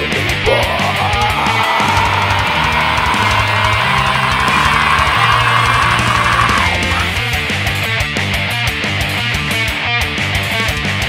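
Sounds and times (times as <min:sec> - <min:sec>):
bass and drums: 0:00.0 - 0:11.0
distorted electric guitar: 0:00.1 - 0:11.0.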